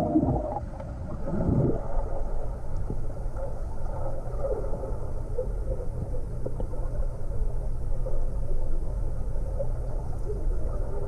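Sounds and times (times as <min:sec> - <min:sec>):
soft bubble blips: 0:00.0 - 0:00.6
low muffled underwater rumble: 0:00.0 - 0:11.0.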